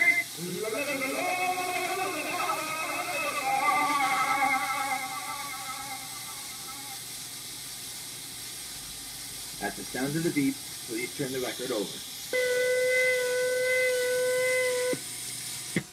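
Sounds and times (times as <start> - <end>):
old record melody wavering pitch: 0.0 - 7.0
record surface hiss: 0.0 - 15.9.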